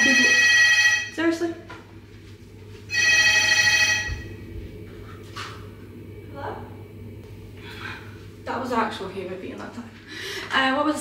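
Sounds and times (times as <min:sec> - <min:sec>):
telephone ringing: 0:00.0 - 0:01.4, 0:02.9 - 0:04.4.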